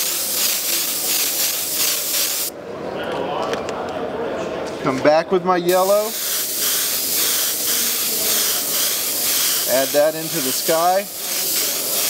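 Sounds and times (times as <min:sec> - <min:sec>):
airbrush spraying hiss: 0:00.0 - 0:02.5, 0:05.7 - 0:12.0.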